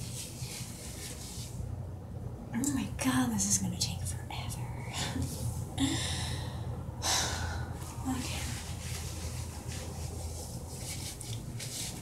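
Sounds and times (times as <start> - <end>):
low steady hum: 0.0 - 12.0
hands scrubbing wet hair: 7.8 - 12.0.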